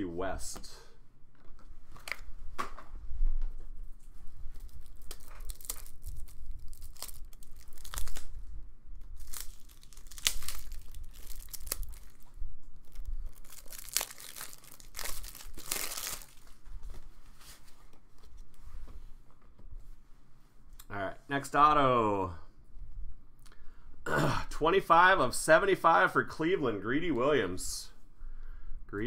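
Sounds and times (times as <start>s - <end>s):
plastic packaging crinkling and tearing: 4.5s - 16.6s.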